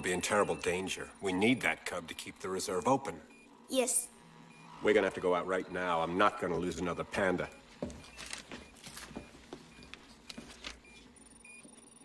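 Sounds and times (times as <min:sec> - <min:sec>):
faint high whine: 0:00.0 - 0:08.4
soft footsteps: 0:07.6 - 0:11.8.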